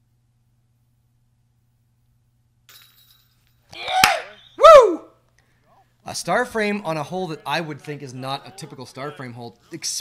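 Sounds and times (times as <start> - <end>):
disc hitting metal chains: 2.7 - 3.5
person shouting cheerfully: 3.7 - 5.1.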